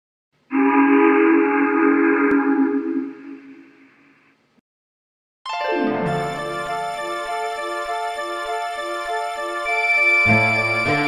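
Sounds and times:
steam locomotive whistle: 9.1s - 11.0s.

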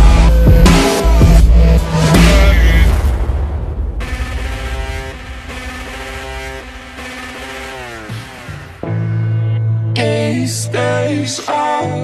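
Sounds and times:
low bass: 0.0s - 10.8s
held synthesizer chords: 0.0s - 11.0s.

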